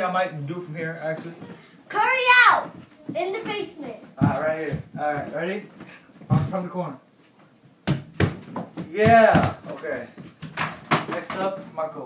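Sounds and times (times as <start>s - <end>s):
ball knocking on mini hoop: 7.8s - 9.6s.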